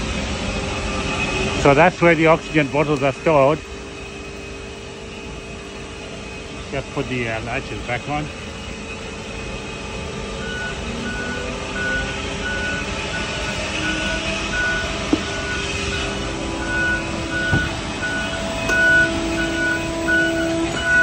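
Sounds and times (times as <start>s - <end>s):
steady mechanical hum: 0.0s - 21.0s
high warning beeps: 10.4s - 21.0s.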